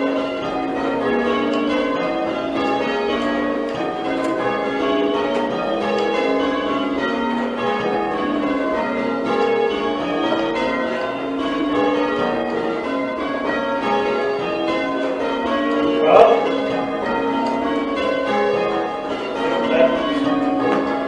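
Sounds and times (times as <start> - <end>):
church bells ringing in changes: 0.0 - 21.0.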